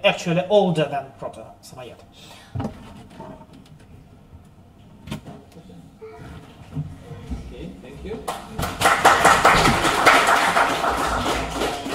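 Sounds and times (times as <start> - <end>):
audience applauding: 8.3 - 11.9.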